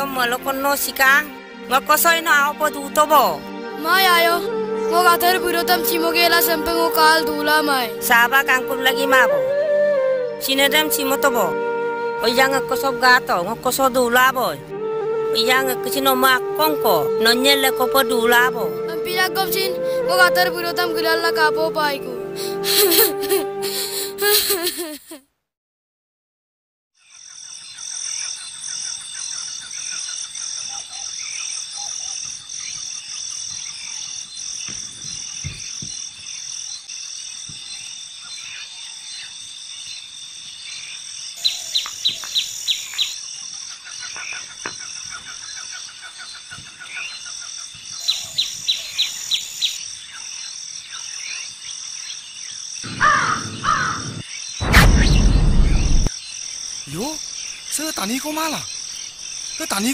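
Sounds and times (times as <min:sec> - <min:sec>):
insects chorus: 0:27.0 - 0:59.9
birds calling: 0:52.8 - 0:56.0
sharp chirps: 0:52.8 - 0:56.1
loud burst of noise: 0:54.0 - 0:56.1.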